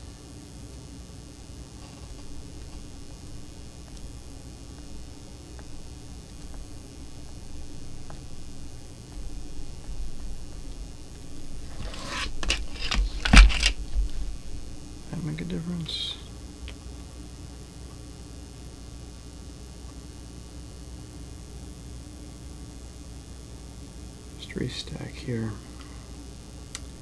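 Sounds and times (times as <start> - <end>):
low room hum: 0.0 - 27.0
clicks and knocks: 11.7 - 13.8.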